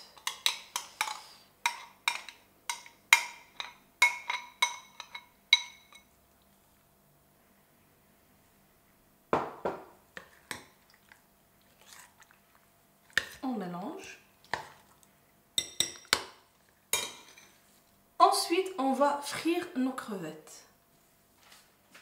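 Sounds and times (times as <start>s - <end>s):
metal spoon clinking on glass bowl: 1.7s - 6.1s, 15.6s - 16.2s
wet squelching batter: 10.2s - 16.9s
person speaking: 13.4s - 14.3s, 18.2s - 20.7s.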